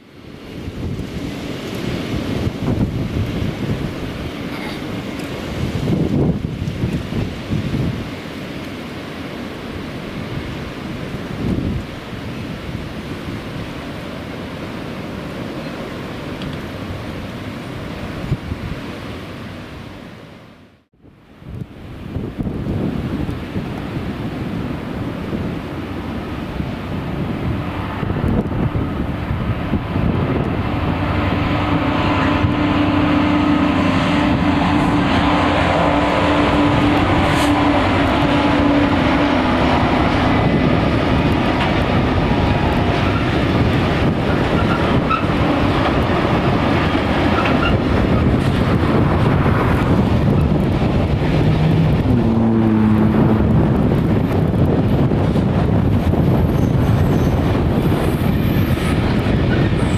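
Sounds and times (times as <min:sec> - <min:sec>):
diesel locomotive engine running: 0:21.9 - 0:59.9
wagons rumbling over bridge: 0:22.0 - 0:59.9.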